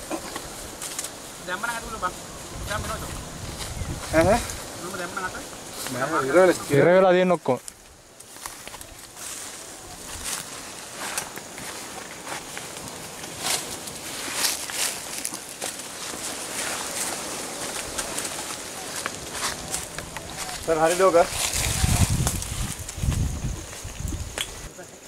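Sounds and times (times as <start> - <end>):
outdoor background hiss: 0.0 - 25.0.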